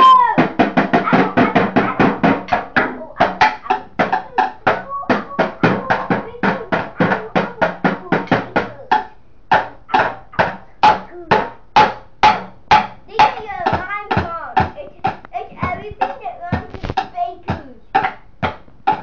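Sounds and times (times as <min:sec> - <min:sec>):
child's voice: 0:00.0 - 0:09.1, 0:10.3 - 0:11.6, 0:13.1 - 0:18.0
hand drum beating: 0:00.0 - 0:19.0.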